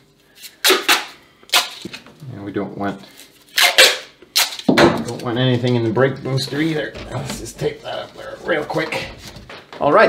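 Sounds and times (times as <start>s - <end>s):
tape pulled off a roll: 0.4s - 2.0s, 3.1s - 5.2s.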